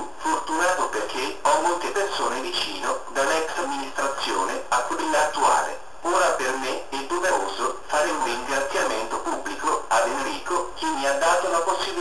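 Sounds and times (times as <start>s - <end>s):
synthetic computer voice: 0.2s - 12.0s.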